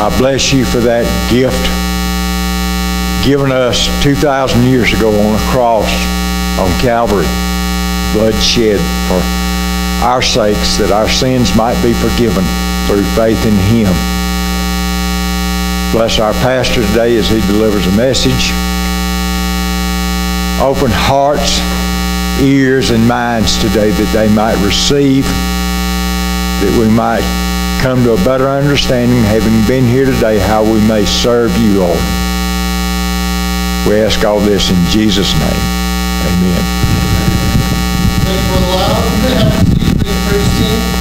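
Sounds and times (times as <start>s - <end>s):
low electrical hum: 0.0s - 41.0s.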